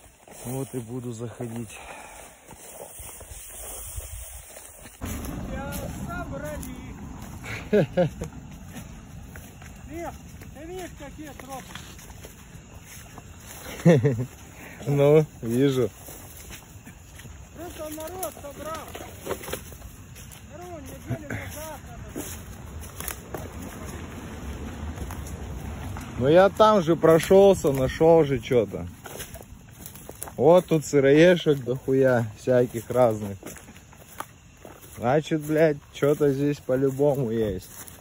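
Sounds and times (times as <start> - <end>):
wind rumble: 1.7 - 30.4
twigs snapping underfoot: 22.2 - 24.0.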